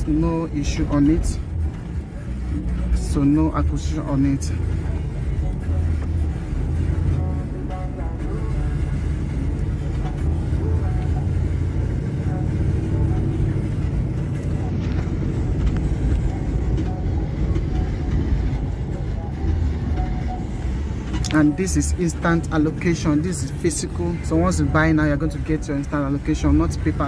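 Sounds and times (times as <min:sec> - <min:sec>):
car engine and tyre rumble: 0:00.0 - 0:27.0.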